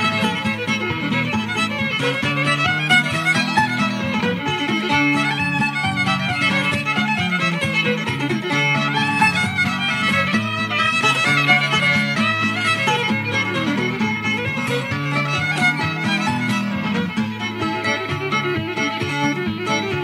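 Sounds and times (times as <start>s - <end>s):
fiddle playing: 0.0s - 20.0s.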